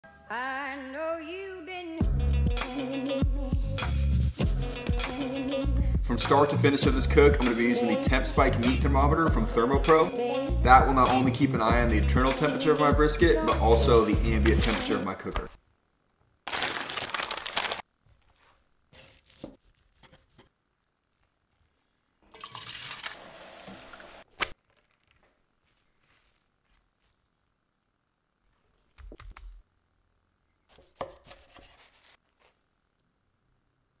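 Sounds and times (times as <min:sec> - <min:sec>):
food preparation on wooden board: 0:18.0 - 0:27.6, 0:30.6 - 0:32.8.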